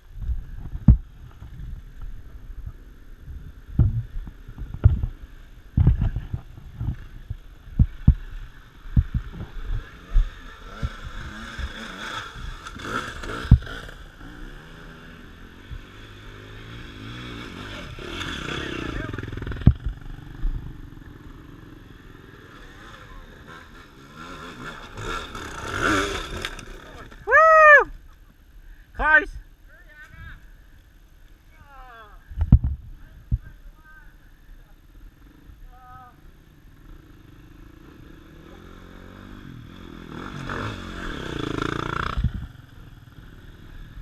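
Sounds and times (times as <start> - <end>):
dirt bike engine revving: 7.8 - 27.6, 36.2 - 44.0
loud shout: 27.2 - 27.9.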